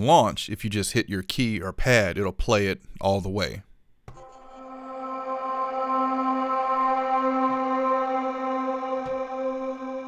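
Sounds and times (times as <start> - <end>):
sustained ambient pad: 4.2 - 10.0.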